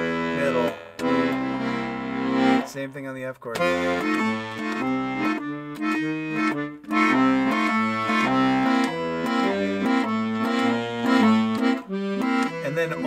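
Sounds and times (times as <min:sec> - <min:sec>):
accordion bass line: 0:00.0 - 0:13.0.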